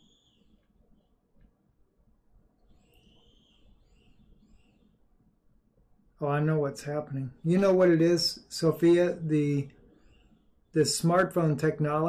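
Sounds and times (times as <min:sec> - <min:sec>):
faint high arching chirps: 0:00.0 - 0:12.0.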